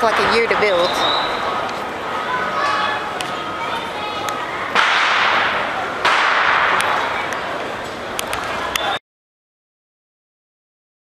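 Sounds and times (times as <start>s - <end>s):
firecracker bangs with echo: 4.7s - 7.2s.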